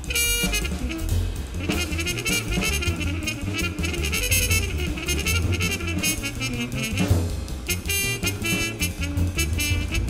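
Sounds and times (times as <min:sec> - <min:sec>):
muted trumpet: 0:00.0 - 0:10.0
upright bass: 0:00.0 - 0:10.0.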